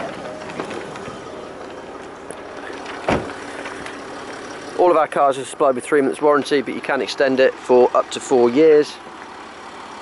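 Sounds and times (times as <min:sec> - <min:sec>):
steady background noise: 0:00.0 - 0:10.0
car door shutting: 0:02.7 - 0:04.0.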